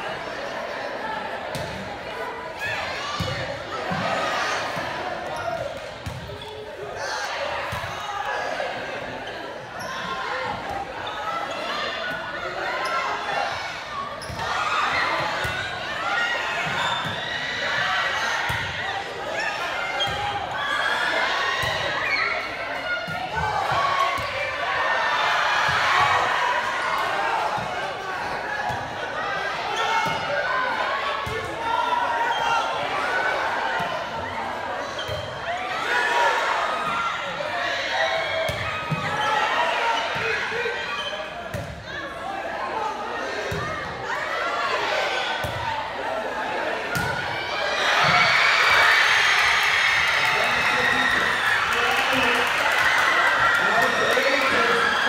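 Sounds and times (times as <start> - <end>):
crowd chatter and shouts: 0.0 - 55.0.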